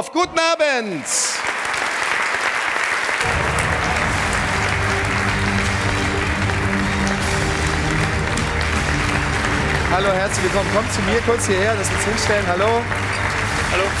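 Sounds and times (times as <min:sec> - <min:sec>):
audience applauding: 0:00.8 - 0:14.0.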